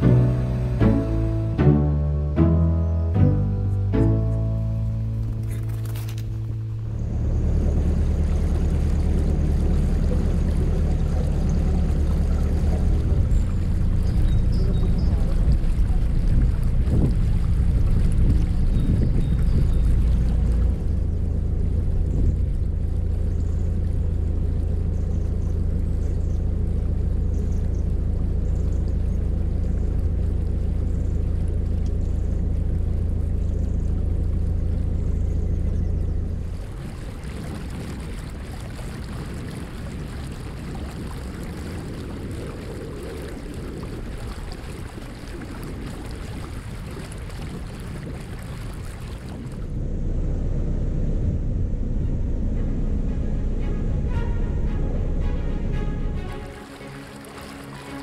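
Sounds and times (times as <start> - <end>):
boat engine humming: 0.0 - 58.0
water washing along hull: 4.1 - 58.0.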